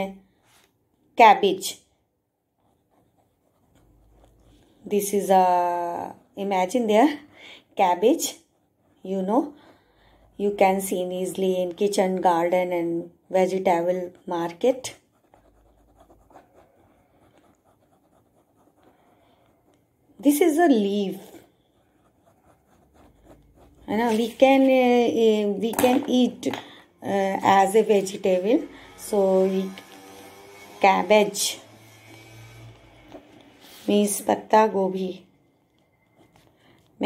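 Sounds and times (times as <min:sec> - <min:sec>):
faint scratching of writing: 0:02.4 - 0:12.6, 0:13.2 - 0:24.8, 0:35.6 - 0:37.0.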